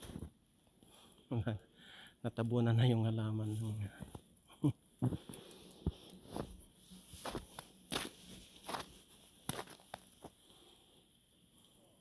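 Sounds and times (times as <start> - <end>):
boots walking through snow: 5.8 - 10.4.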